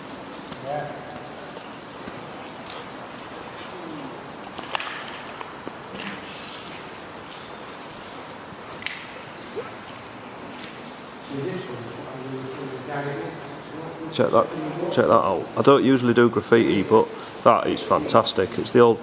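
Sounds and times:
low ambient hiss: 0:00.0 - 0:19.0.

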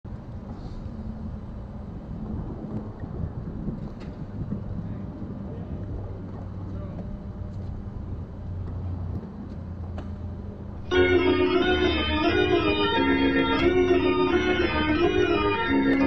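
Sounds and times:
outdoor background noise: 0:00.0 - 0:16.0.

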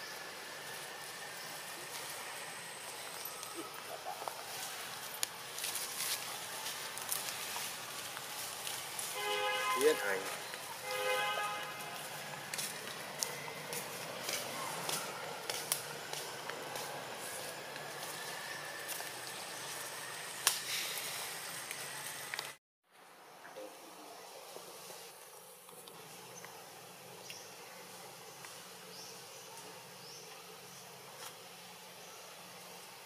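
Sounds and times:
insects hissing: 0:16.3 - 0:22.6.

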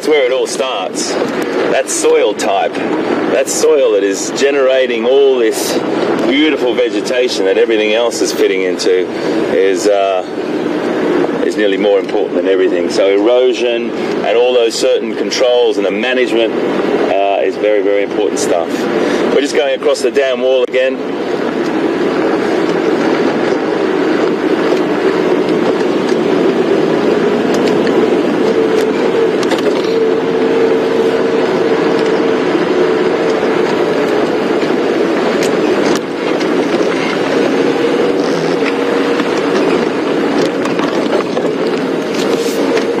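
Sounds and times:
vehicle engine droning: 0:00.0 - 0:43.0.

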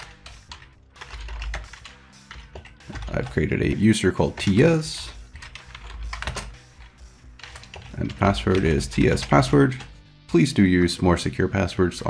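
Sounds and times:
keyboard typing: 0:00.0 - 0:10.0.

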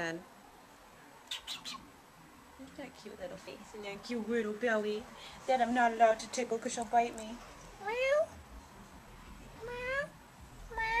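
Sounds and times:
cat meowing: 0:09.6 - 0:11.0.

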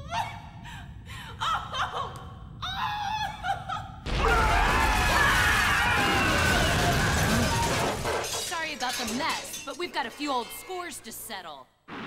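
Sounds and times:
debris crashing and shattering: 0:04.1 - 0:09.9.

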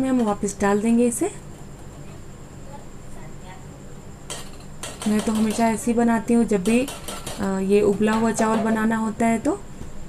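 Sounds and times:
sharp metal knocks: 0:04.3 - 0:05.8, 0:06.6 - 0:09.0.

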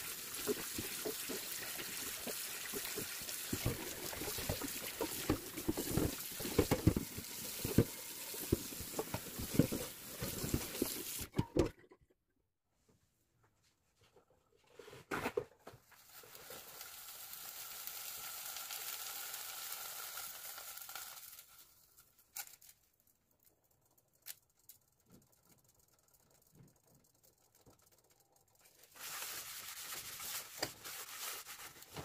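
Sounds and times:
water running and splashing: 0:00.0 - 0:11.3
brush scrubbing skillet: 0:28.8 - 0:32.0.

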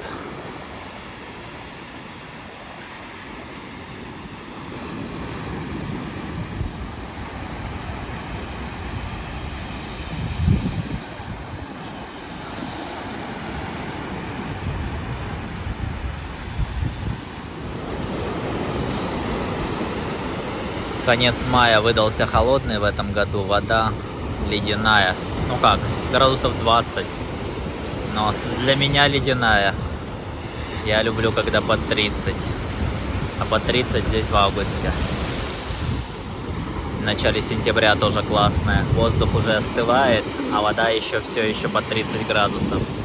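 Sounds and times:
surf breaking on beach: 0:00.0 - 0:43.0
wind buffeting microphone: 0:04.4 - 0:43.0.

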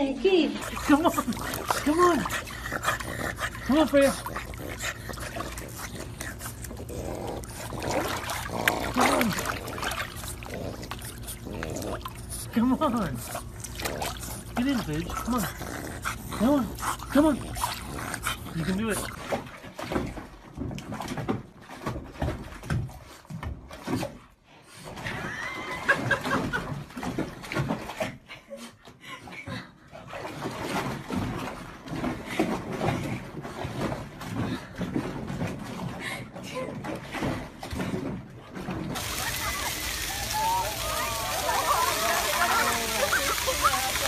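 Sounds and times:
pool water lapping and splashing: 0:00.0 - 0:44.0
cat splashing in water: 0:07.5 - 0:12.4, 0:38.9 - 0:44.0.

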